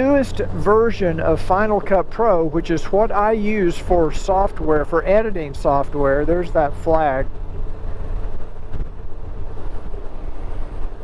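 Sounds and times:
motorcycle engine and tyres: 0.0 - 11.0
wind rumbling on microphone: 0.0 - 11.0.

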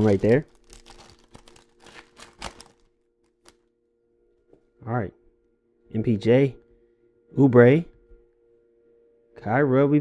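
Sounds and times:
foil wrapper crinkling: 0.0 - 3.6.

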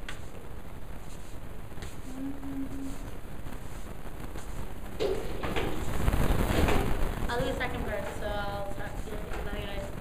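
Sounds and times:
woman singing held notes: 2.1 - 3.0.

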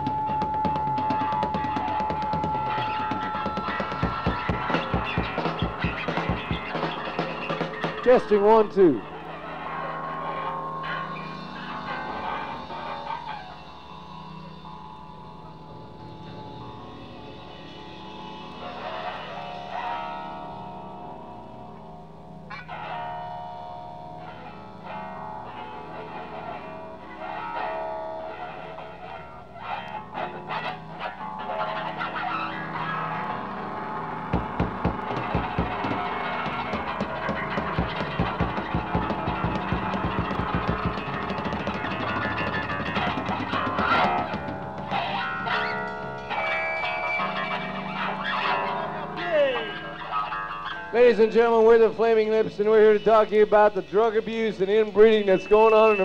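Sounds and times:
distorted electric guitar: 0.0 - 56.0
rapid hard hits: 0.7 - 8.0, 34.3 - 45.1.

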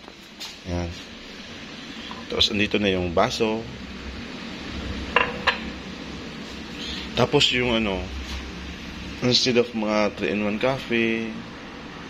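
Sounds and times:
steady low hum: 0.0 - 12.0
ceramic cup clinking on counter: 5.2 - 5.7.

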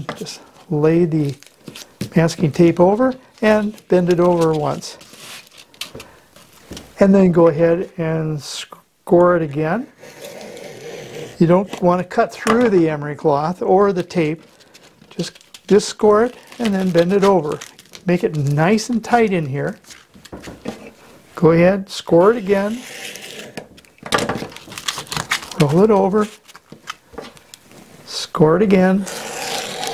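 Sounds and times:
rustling of cloth and tape: 0.0 - 7.0, 13.7 - 21.2, 22.1 - 28.2, 28.8 - 29.9
knife blade scraping emery cloth: 29.0 - 29.9.

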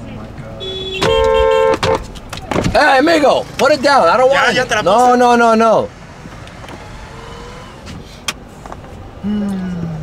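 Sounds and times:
car and traffic rumble: 0.0 - 10.0.

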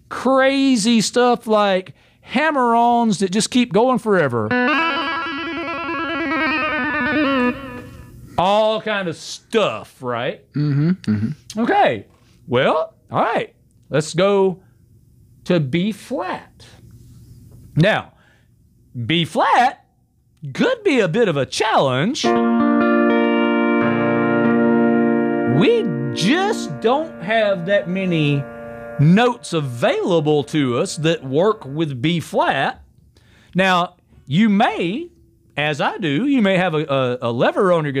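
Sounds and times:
pedal steel guitar trill: 4.5 - 8.1, 22.2 - 32.4
electric keyboard accompaniment: 4.5 - 8.2, 22.2 - 32.1
low bass note: 23.8 - 32.1.

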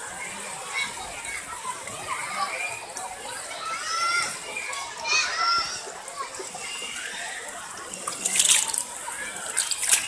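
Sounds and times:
children calling out: 0.2 - 7.8.

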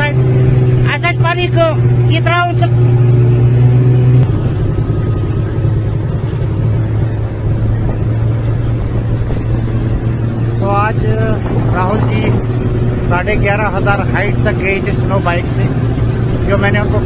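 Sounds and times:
snowmobile engine running: 0.0 - 17.0.

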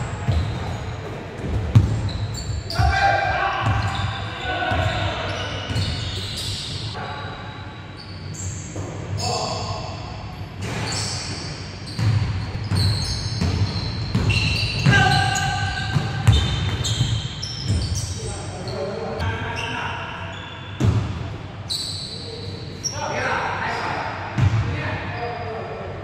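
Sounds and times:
sneakers squeaking: 0.0 - 25.5.

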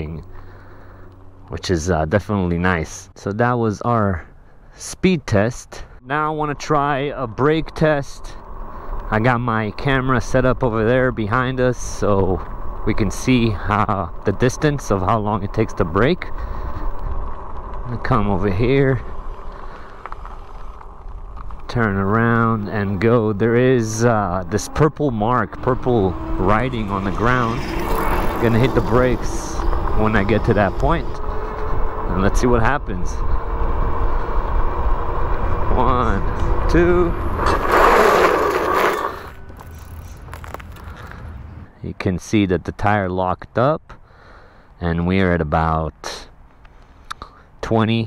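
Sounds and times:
wind rushing over microphone: 6.3 - 39.6
bike tyres rolling: 6.6 - 41.6.

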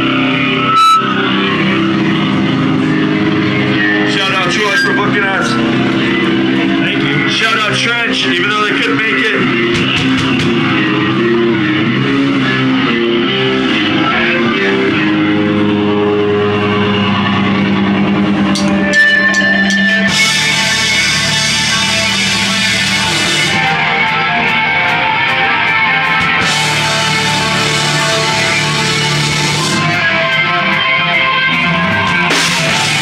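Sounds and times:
rock band droning chord: 0.0 - 33.0.

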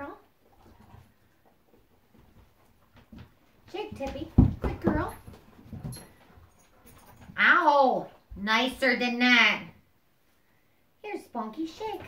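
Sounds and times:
woman speaking: 0.0 - 0.2, 3.7 - 5.2, 7.4 - 9.8, 11.0 - 12.0.

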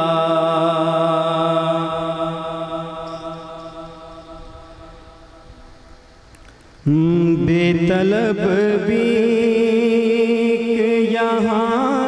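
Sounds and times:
man singing unaccompanied: 0.0 - 5.4, 6.8 - 12.0.

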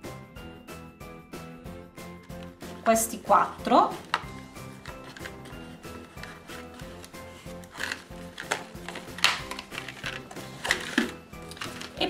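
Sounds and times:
background music: 0.0 - 12.0
plastic packaging crackling: 4.8 - 12.0.

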